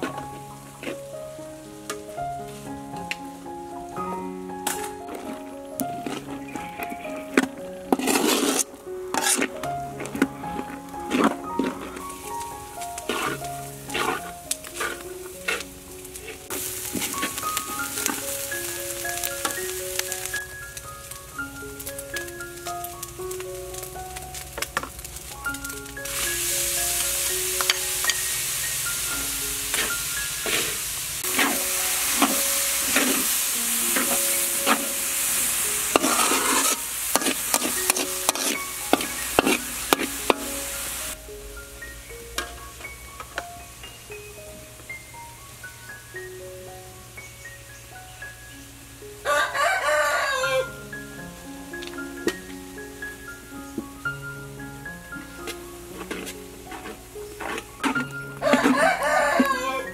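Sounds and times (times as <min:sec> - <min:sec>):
corn sizzling in a wok: 0:00.0 - 0:59.9
spatula scraping and clinking on pan: 0:05.9 - 0:12.2, 0:13.0 - 0:20.1, 0:26.0 - 0:40.8, 0:55.4 - 0:59.9.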